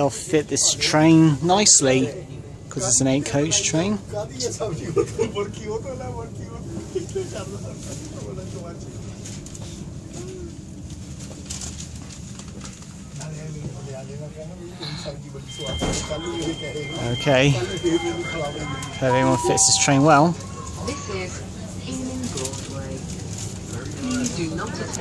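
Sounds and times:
low train rumble: 0.0 - 25.0
passengers chatting: 0.0 - 25.0
steady high beep: 15.5 - 20.8.

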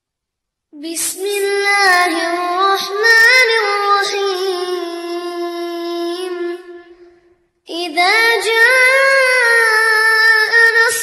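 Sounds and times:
child chanting melodically: 0.8 - 11.0.

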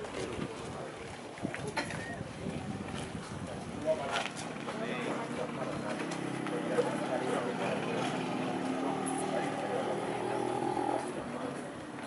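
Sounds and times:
faint voices: 0.0 - 12.0
boots marching on asphalt: 2.5 - 8.9.

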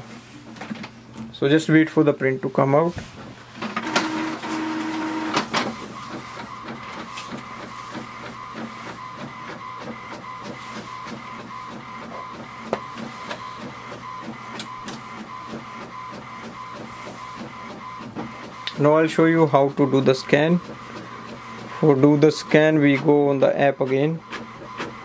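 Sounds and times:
printer feeding paper and printing: 2.0 - 25.0
printer motor whirring: 3.2 - 25.0
printer click: 3.6 - 8.5, 12.6 - 15.2.

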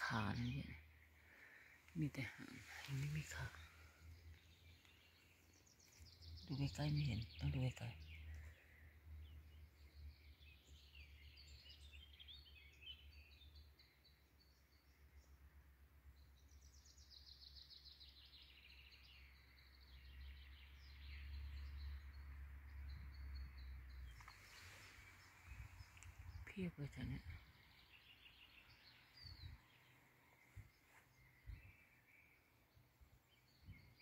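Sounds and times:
birds chirping and trilling: 0.0 - 15.4, 16.2 - 34.0.

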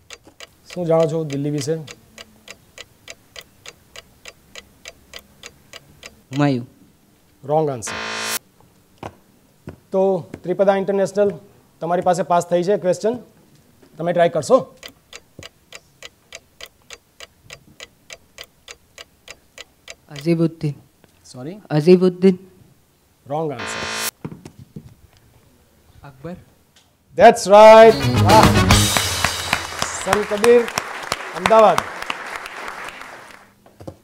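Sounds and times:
clock ticking: 0.0 - 6.6, 7.9 - 8.4, 14.7 - 20.3, 23.6 - 24.1.

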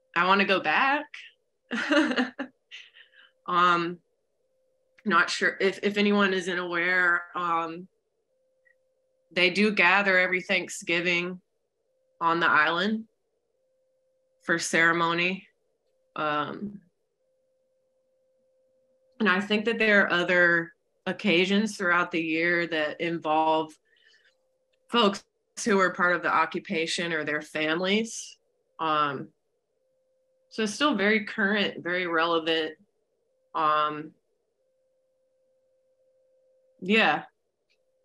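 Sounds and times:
faint steady tone: 0.0 - 38.0.

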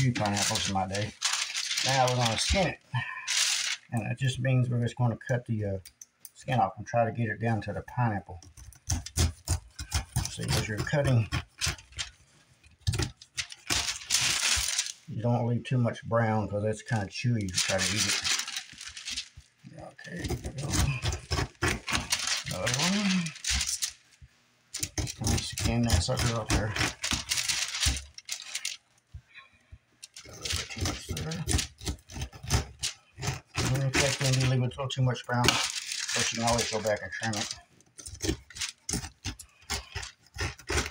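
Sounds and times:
knife slicing pineapple rind: 8.5 - 12.0, 20.2 - 23.8, 24.8 - 28.6, 30.2 - 34.6, 35.4 - 40.9.

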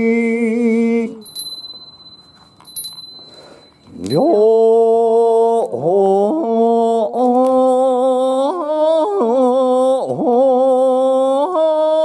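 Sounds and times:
small bell ringing: 1.2 - 4.6.

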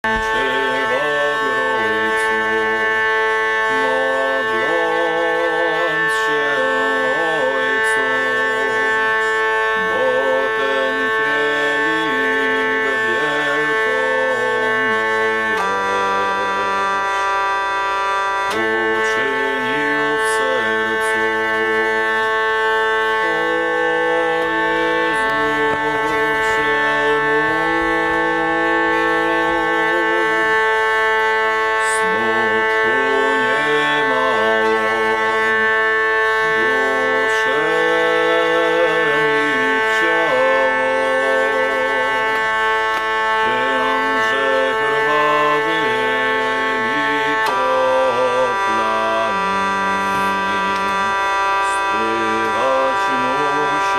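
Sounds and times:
hurdy-gurdy melody with drone: 0.0 - 53.9.

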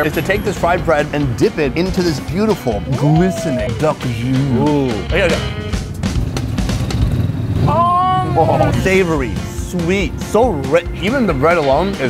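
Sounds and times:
motorbike passing: 0.0 - 10.8
background music: 0.0 - 12.0
person saying ooh: 2.9 - 4.0.

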